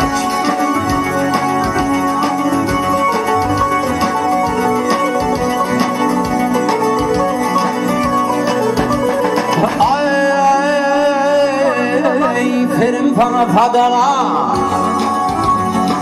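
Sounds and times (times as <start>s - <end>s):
drum kit beating: 0.0s - 11.5s, 14.5s - 16.0s
held many-toned melody: 0.0s - 13.2s, 14.5s - 16.0s.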